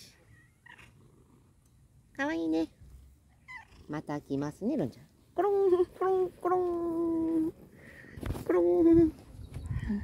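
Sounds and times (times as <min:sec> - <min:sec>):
cat purring: 0:00.4 - 0:01.9.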